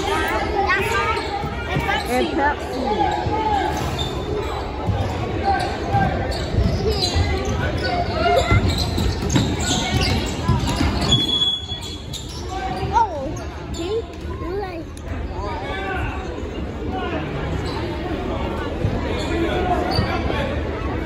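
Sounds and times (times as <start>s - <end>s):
spectators chatting: 0.0s - 21.0s.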